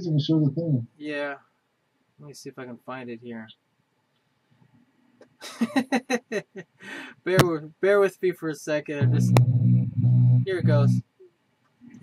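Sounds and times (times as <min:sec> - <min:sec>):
man laughing breathily: 0:05.4 - 0:07.2.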